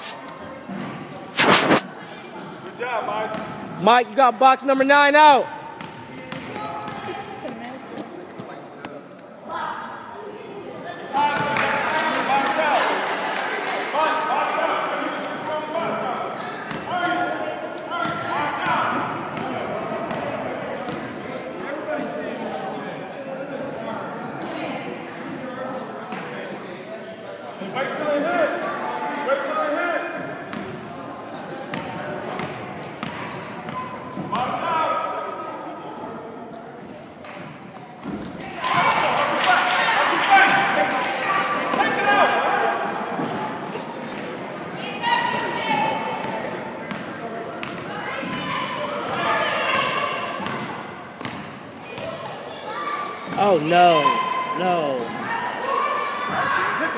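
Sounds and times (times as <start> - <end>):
players and spectators shouting: 38.5 - 43.2, 44.8 - 46.7, 47.9 - 50.9, 51.8 - 56.9
basketball bouncing on gym floor: 51.2 - 52.1.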